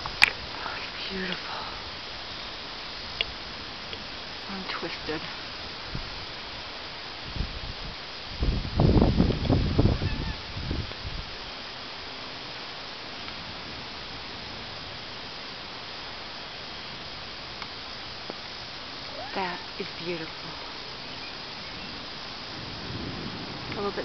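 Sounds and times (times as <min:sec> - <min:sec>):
wind buffeting microphone: 0:00.0 - 0:11.5, 0:19.0 - 0:24.0
steady outdoor hiss: 0:00.0 - 0:24.0.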